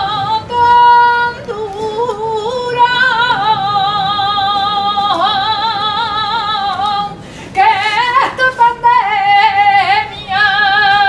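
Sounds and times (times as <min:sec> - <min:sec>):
high voice singing with vibrato: 0:00.0 - 0:11.0.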